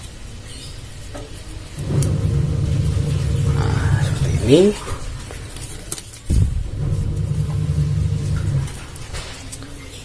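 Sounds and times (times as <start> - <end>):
vehicle engine running: 1.8 - 5.2, 6.4 - 9.1.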